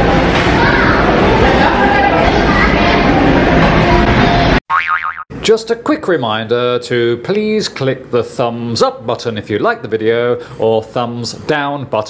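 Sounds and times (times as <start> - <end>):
busy restaurant background noise: 0.0 - 4.6
wobbling boing sound effect: 4.7 - 5.2.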